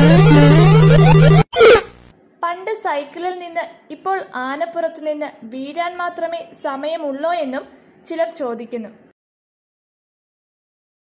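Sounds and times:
rising and falling musical tones: 0:00.0 - 0:01.8.

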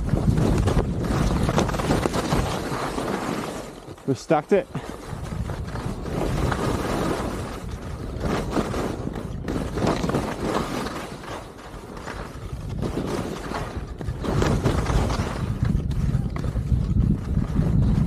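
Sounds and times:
skis scraping over snow: 0:00.0 - 0:18.0
wind rumbling on microphone: 0:00.0 - 0:18.0.

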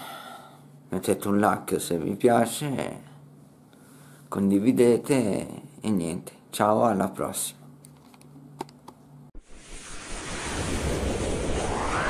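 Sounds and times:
rushing whoosh: 0:09.4 - 0:12.0.

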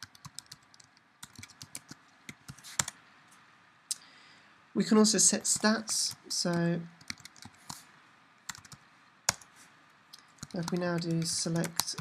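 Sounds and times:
computer keyboard typing: 0:00.0 - 0:03.0, 0:07.0 - 0:07.8, 0:08.5 - 0:09.5, 0:10.2 - 0:12.0.

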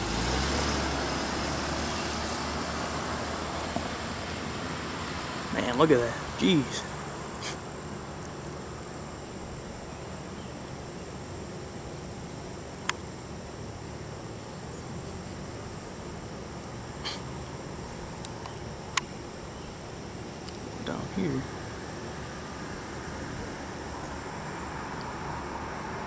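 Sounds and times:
insects trilling: 0:00.0 - 0:26.0.

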